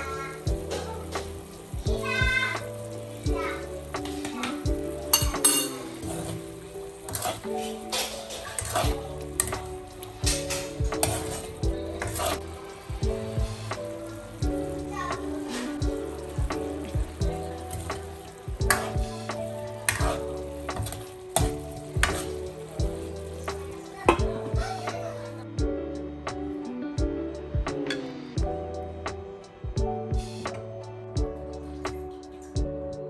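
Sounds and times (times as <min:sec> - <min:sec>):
meat sizzling in a wok: 0:00.0 - 0:24.0
background music: 0:00.0 - 0:33.0
metal ladle scraping a pan: 0:05.1 - 0:12.6, 0:18.7 - 0:22.6.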